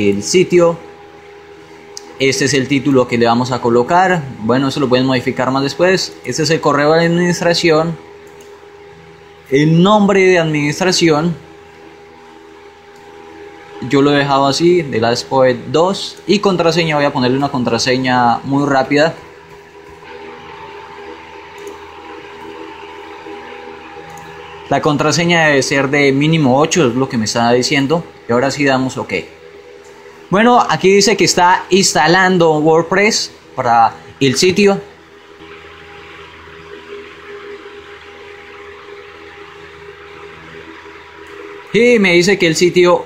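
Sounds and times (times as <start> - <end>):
constant hiss: 0.0 - 43.0
steady tonal hum: 0.0 - 43.0.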